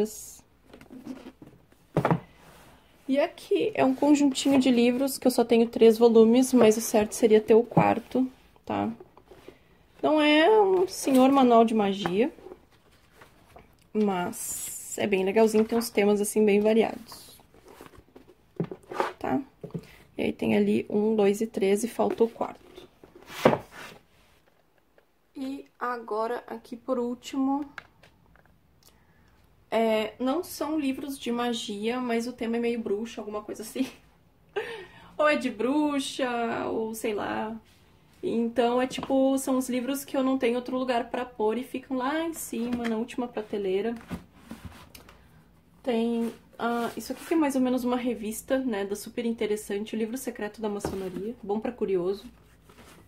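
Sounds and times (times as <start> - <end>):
book knocking on wooden shelf: 1.4 - 2.3
books scraping and tapping: 22.1 - 24.1, 44.0 - 45.2.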